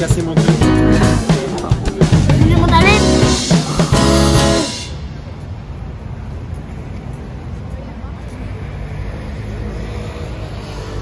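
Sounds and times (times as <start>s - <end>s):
people talking: 0.0s - 4.0s
street traffic noise: 0.0s - 11.0s.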